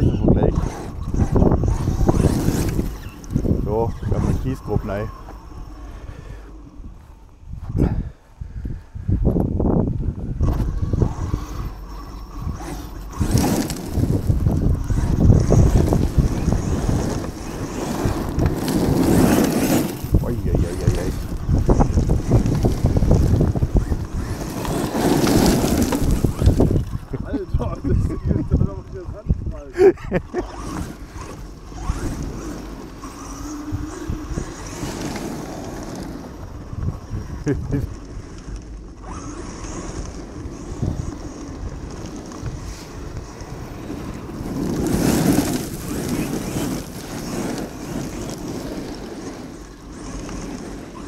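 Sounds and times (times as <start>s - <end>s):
toy truck driving over gravel: 0.0s - 7.8s, 9.6s - 51.0s
wind buffeting microphone: 0.0s - 51.0s.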